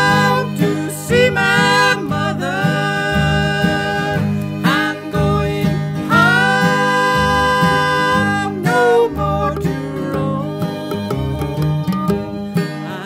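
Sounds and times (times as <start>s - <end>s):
bluegrass band playing: 0.0s - 13.0s
sliding lead melody: 0.0s - 13.0s
strummed guitar rhythm: 0.0s - 13.0s.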